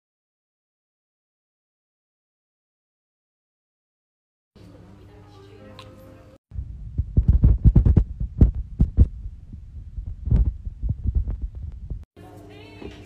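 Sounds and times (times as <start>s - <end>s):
loud low thumps: 6.5s - 12.1s.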